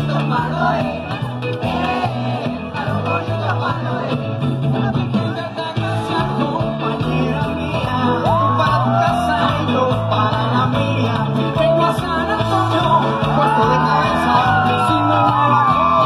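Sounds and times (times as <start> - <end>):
live latin pop band: 0.0 - 16.0.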